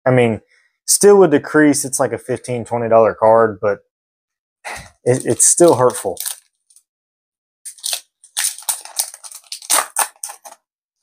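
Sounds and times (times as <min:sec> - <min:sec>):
foil wrapper tearing and crinkling: 0:05.1 - 0:06.5, 0:07.7 - 0:10.6.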